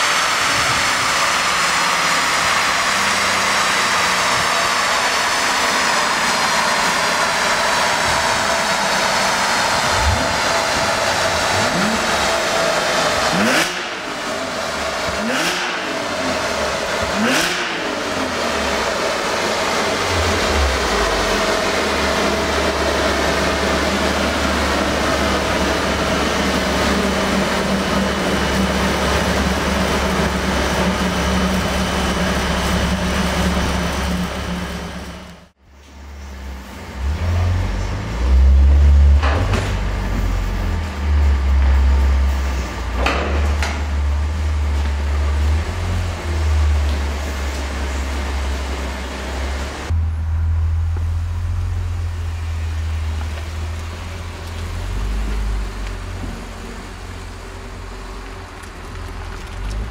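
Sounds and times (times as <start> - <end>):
falling whine of rollers: 0.0 - 35.5
car engine at full throttle: 0.0 - 35.6, 36.2 - 59.9
low steady drone: 49.6 - 57.9.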